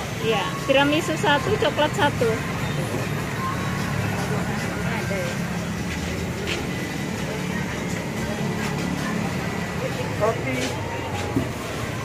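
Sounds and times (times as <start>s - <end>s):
faint voices: 0.0s - 12.0s
vehicle engines rumbling: 0.0s - 12.0s.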